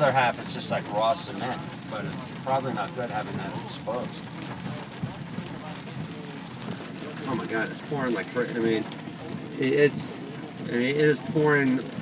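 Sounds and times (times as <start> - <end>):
heavy rain on car roof: 0.0 - 12.0.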